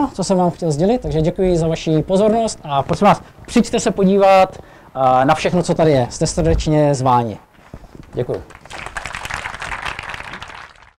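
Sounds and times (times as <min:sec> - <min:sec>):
audience applauding: 0:08.0 - 0:11.0.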